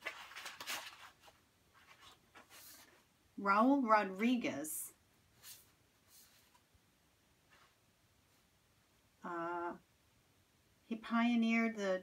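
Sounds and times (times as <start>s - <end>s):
paper sheets rustling: 0.0s - 3.1s, 5.4s - 6.7s.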